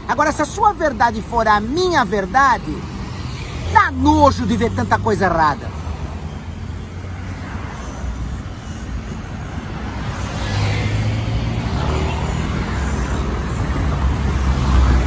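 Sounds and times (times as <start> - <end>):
car and truck engines running: 0.0 - 15.0.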